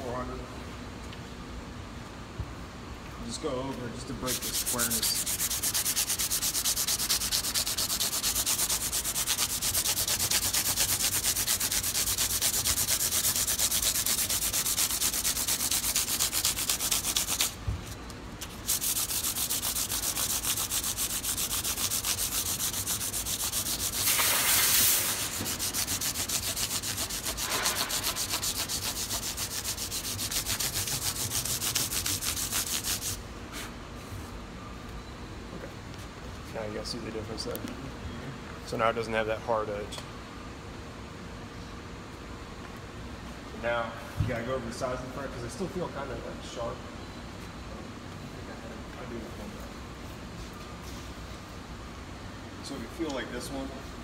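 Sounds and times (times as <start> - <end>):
sandpaper rubbing on wood: 4.2 - 17.6, 18.4 - 33.7.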